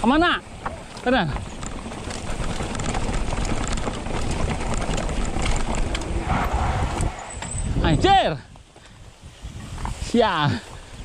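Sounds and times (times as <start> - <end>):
bike frame and chain rattling: 0.0 - 8.8
tyres crunching over stones: 0.4 - 7.8
wind on microphone: 0.8 - 11.0.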